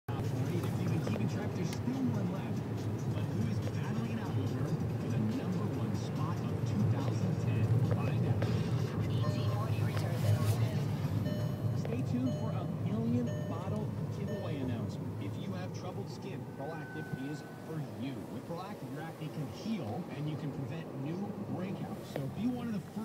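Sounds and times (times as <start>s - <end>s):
car driving rumble: 0.1s - 23.0s
car radio talk and music: 0.1s - 23.0s.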